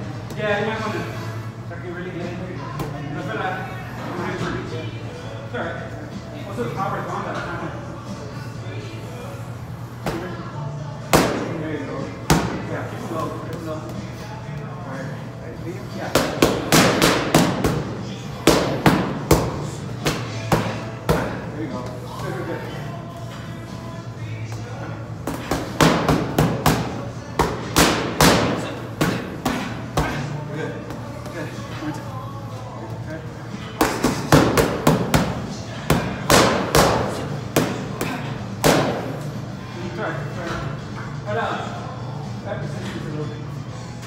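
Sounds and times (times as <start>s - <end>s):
background music: 0.0s - 44.0s.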